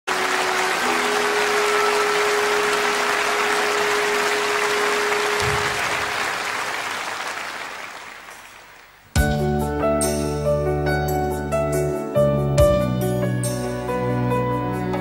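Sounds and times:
long held music notes: 0:00.1 - 0:05.9
audience applauding: 0:00.1 - 0:09.1.

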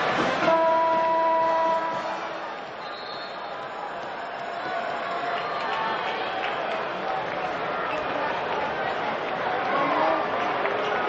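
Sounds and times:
crowd noise: 0:00.0 - 0:11.0
arena horn blast: 0:00.2 - 0:02.4.

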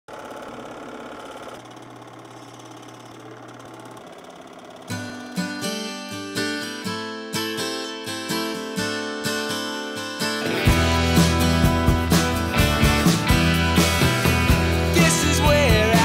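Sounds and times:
whirring with low hum: 0:00.1 - 0:05.4
acoustic guitar strumming: 0:04.6 - 0:16.0.

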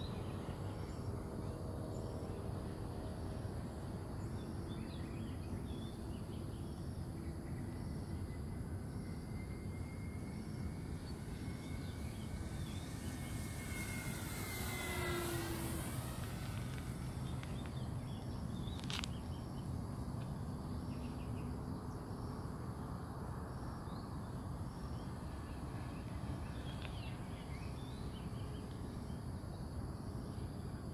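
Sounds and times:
model plane electric motor whine: 0:08.6 - 0:19.1.

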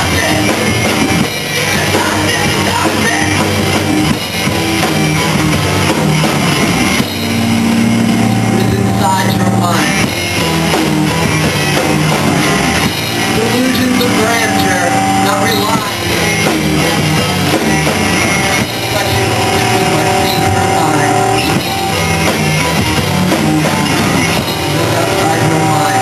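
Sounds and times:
distorted guitar and bass chord: 0:00.0 - 0:26.0
live rock band: 0:00.0 - 0:26.0.

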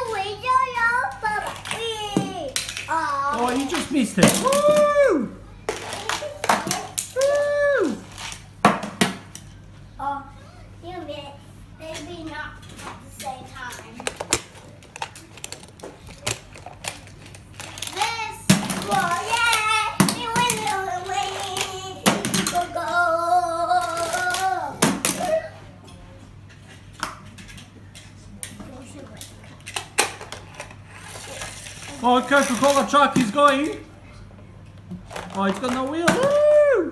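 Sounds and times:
toy cars clicking and clattering: 0:00.0 - 0:04.9, 0:05.7 - 0:07.5, 0:11.9 - 0:23.0, 0:23.7 - 0:25.4, 0:29.1 - 0:33.8, 0:35.0 - 0:36.6.

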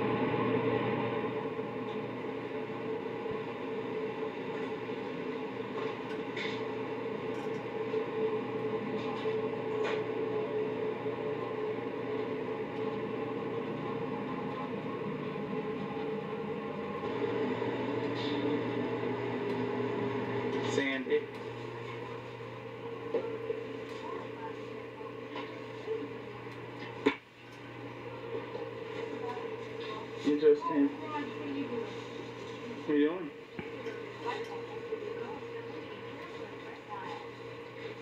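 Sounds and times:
kitchen machinery hum: 0:00.0 - 0:38.0.

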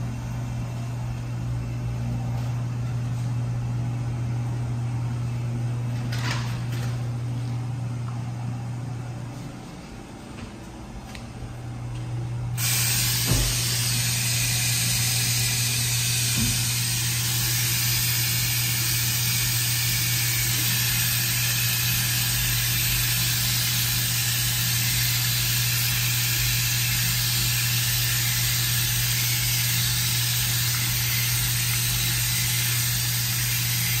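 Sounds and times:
steady low hum: 0:00.0 - 0:34.0
faucet water splashing into basin: 0:30.2 - 0:33.6.

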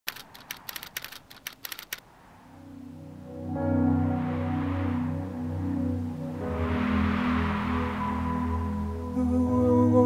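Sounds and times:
keyboard key clicks: 0:00.1 - 0:02.0.

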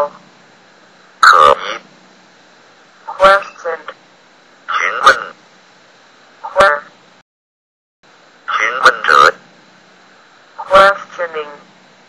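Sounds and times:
synthesized voice syllable: 0:01.2 - 0:01.9, 0:03.0 - 0:04.0, 0:04.7 - 0:05.4, 0:06.4 - 0:06.9, 0:10.6 - 0:11.6.

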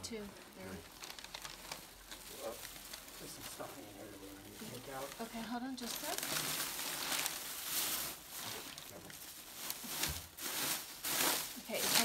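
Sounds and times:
paper and plastic crinkling: 0:00.1 - 0:12.0.

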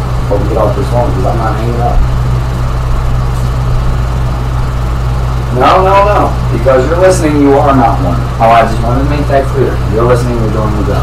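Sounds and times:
steady low hum with hiss: 0:00.0 - 0:11.0.

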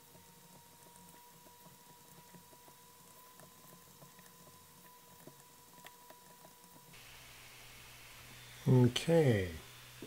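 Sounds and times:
faint steady high whine: 0:00.0 - 0:10.0.

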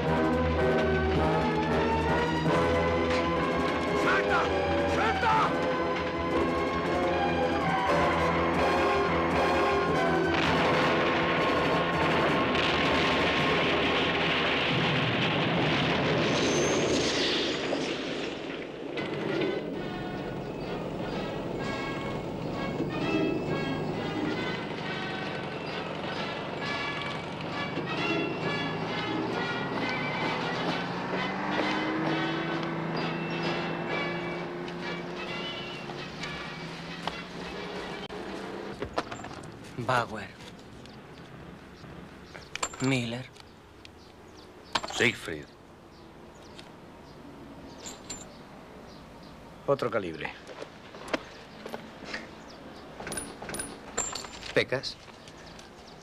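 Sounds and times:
film score music: 0:00.0 - 0:15.3, 0:18.4 - 0:38.7
gunfire: 0:10.2 - 0:18.7
explosions: 0:10.2 - 0:19.8.

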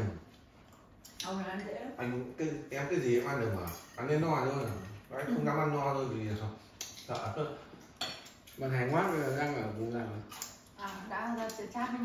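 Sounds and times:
cutlery clinking against dishes: 0:03.4 - 0:05.2, 0:06.8 - 0:08.7.

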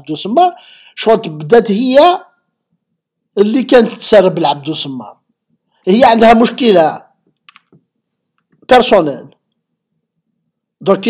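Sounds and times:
man speaking: 0:00.0 - 0:02.4, 0:03.3 - 0:05.2, 0:05.8 - 0:07.2, 0:08.7 - 0:09.4, 0:10.8 - 0:11.0.

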